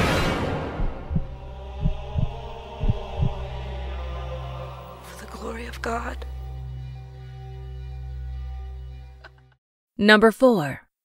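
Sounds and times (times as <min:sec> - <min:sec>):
heartbeat thumps: 0:00.7 - 0:03.6
low steady drone: 0:00.8 - 0:09.0.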